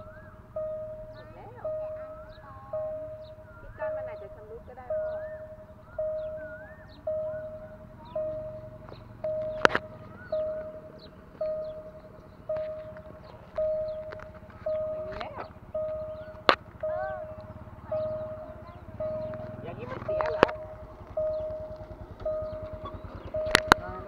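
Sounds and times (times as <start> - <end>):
faint high chirps: 0.0 - 24.0
level crossing warning bell: 0.0 - 24.0
sharp clicks: 8.2 - 24.0.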